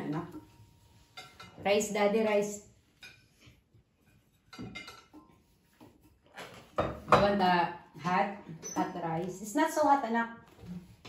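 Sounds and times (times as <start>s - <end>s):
cutlery and plates clinking: 0.0s - 1.6s, 2.9s - 5.4s.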